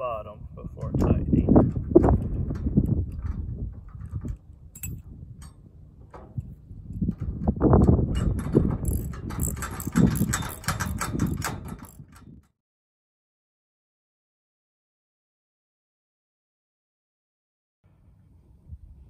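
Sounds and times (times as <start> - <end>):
wrench clicking and clanking: 4.2 - 5.6, 7.1 - 12.3.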